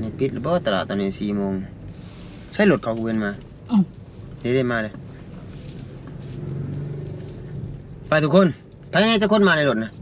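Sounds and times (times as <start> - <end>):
car engine hum from inside: 0.0 - 10.0.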